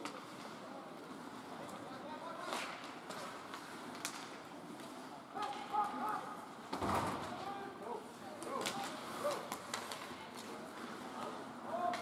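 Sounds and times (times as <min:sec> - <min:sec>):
thud: 0:06.7 - 0:07.3.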